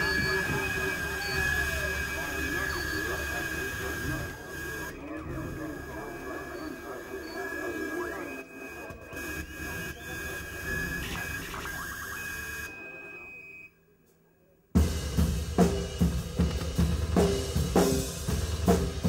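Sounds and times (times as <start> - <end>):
high-pitched electronic tone: 0.0 - 13.7
indistinct voices: 0.0 - 14.3.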